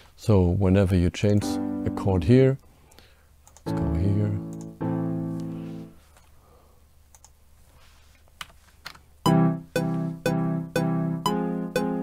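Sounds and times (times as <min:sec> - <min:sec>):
software piano playing chords: 0:01.4 - 0:02.4, 0:03.7 - 0:05.9, 0:09.3 - 0:12.0
faint mouse clicks: 0:07.1 - 0:07.4.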